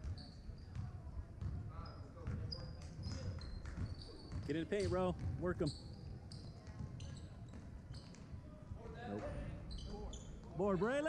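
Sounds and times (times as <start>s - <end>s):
sneaker squeaks: 0.0s - 8.4s, 9.1s - 10.6s
low hum of hall: 0.0s - 11.0s
basketball bouncing: 0.7s - 1.6s, 2.2s - 2.4s, 3.0s - 5.5s.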